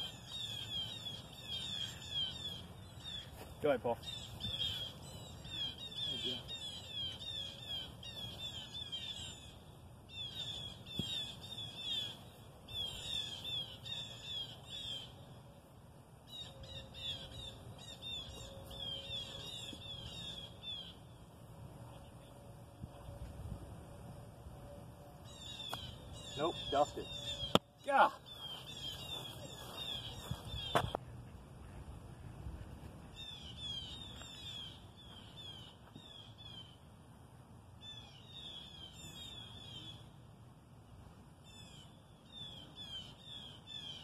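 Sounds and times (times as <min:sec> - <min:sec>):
songbird chirping: 0:00.0 - 0:37.0, 0:37.8 - 0:40.3, 0:41.0 - 0:44.0.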